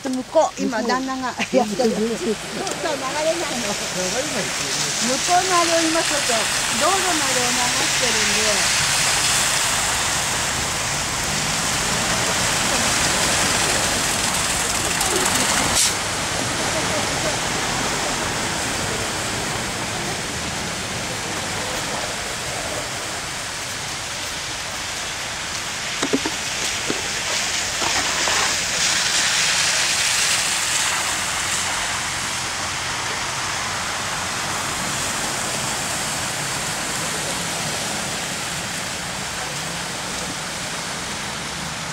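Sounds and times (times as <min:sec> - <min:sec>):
tyres hissing on wet road: 0:00.0 - 0:41.9.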